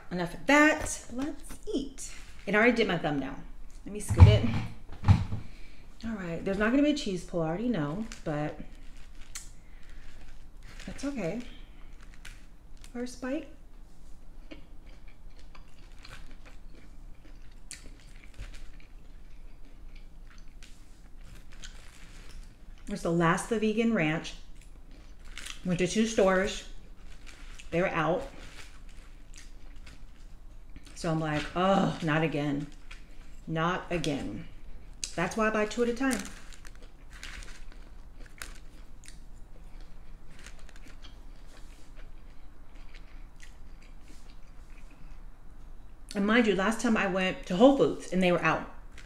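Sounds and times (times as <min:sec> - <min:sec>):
soft food crunches: 0:00.3 - 0:03.9, 0:06.5 - 0:46.2, 0:48.0 - 0:49.0
chewing with wet mouth sounds: 0:13.8 - 0:22.9, 0:24.4 - 0:25.7, 0:26.7 - 0:32.0, 0:36.4 - 0:46.2.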